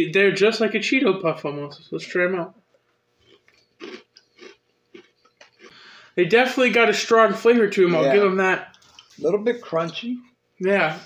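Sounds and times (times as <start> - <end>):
crunchy snacks being chewed: 3.2 - 5.8.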